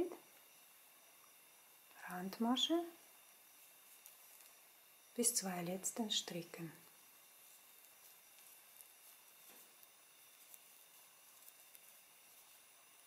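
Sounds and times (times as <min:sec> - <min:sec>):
faint room hiss: 0:00.0 - 0:13.0.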